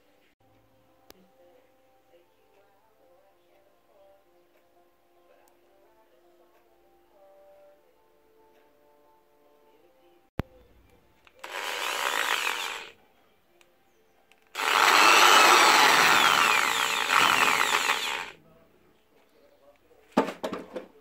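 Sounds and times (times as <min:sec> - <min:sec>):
electric drill whine: 0:11.4 - 0:12.9, 0:14.6 - 0:18.4.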